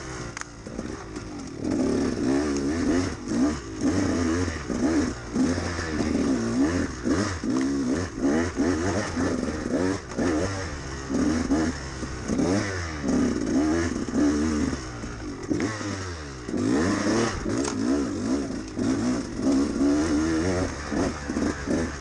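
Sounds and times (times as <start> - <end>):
two-stroke engine revving: 0.0 - 22.0.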